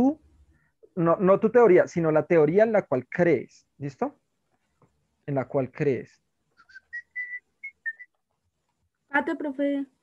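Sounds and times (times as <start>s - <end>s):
high whistle-like chirps: 6.6s - 8.2s.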